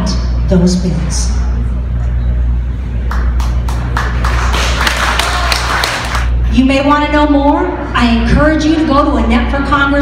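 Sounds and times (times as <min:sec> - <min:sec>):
low steady hum: 0:00.0 - 0:10.0
audience applauding: 0:03.1 - 0:06.3.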